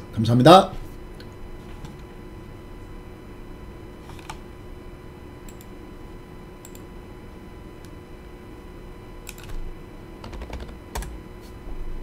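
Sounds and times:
computer keyboard clicks: 9.3 - 9.6, 10.2 - 11.1.

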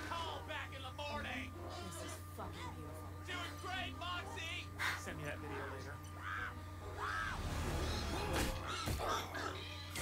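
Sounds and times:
background music: 0.0 - 10.0
cartoon hog squealing: 6.2 - 10.0.

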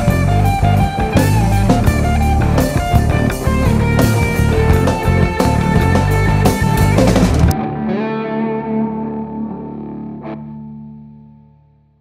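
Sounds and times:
rock band final hit: 0.0 - 9.9
distorted guitar chord ringing: 0.0 - 11.9.

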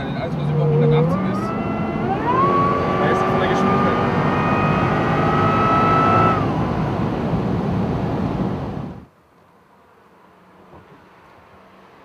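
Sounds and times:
car engine at high speed: 0.0 - 9.1
supercharger whine: 0.0 - 9.1
road noise: 0.0 - 12.0.

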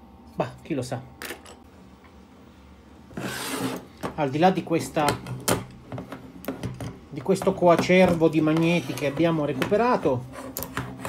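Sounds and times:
rubbing scraping noise: 3.2 - 3.8.

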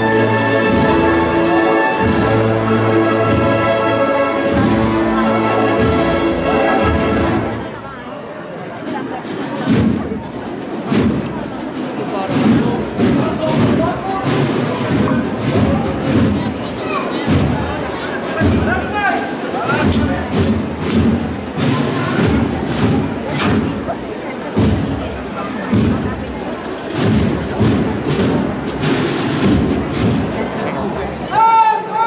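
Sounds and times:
band playing a march: 0.0 - 8.0, 9.2 - 31.9
crowd chatter: 0.0 - 32.0.

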